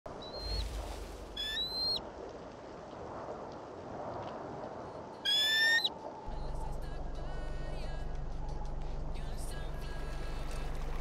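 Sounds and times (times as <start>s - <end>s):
bird whistled calls: 0.2s - 0.7s, 1.4s - 2.0s, 5.3s - 5.9s.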